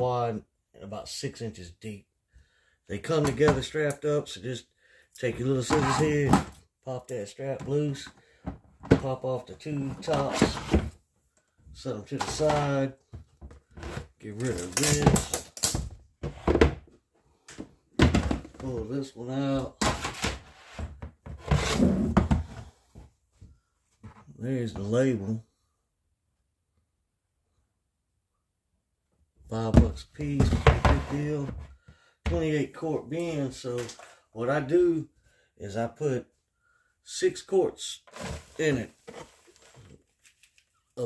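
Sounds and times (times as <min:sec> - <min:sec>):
plastic bin scraping: 0:05.4 - 0:06.6, 0:07.6 - 0:11.0, 0:11.8 - 0:15.4, 0:19.6 - 0:22.8, 0:29.7 - 0:31.7, 0:38.1 - 0:40.0
plastic bin knock: 0:18.0 - 0:18.8.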